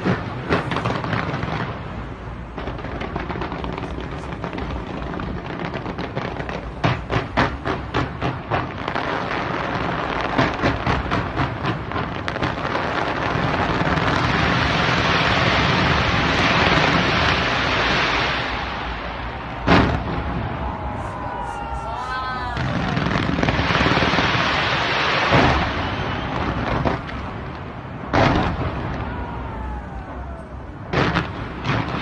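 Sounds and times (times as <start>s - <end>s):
fireworks bangs: 0.0s - 32.0s
fireworks crackle: 0.0s - 32.0s.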